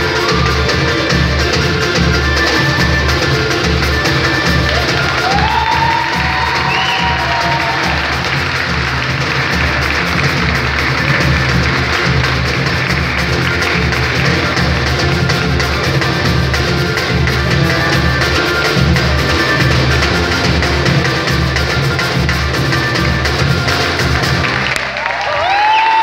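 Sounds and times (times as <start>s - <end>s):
bass drum steady beat: 0.0s - 24.6s
snare drum: 0.0s - 24.7s
people clapping: 0.0s - 26.0s
people cheering: 4.3s - 14.8s, 24.3s - 26.0s.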